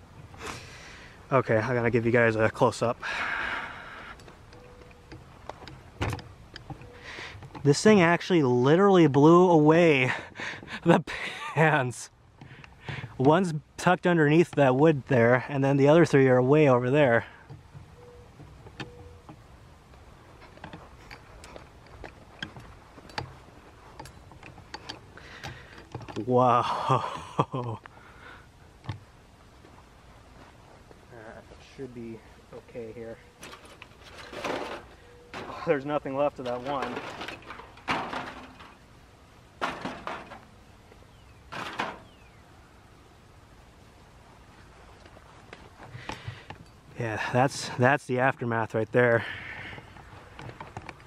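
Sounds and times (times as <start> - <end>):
foil pans clattering: 33.4 - 38.8, 39.6 - 40.5, 41.5 - 42.2
foil pans scraping rattles: 33.4 - 38.9, 39.6 - 40.5, 41.5 - 42.2.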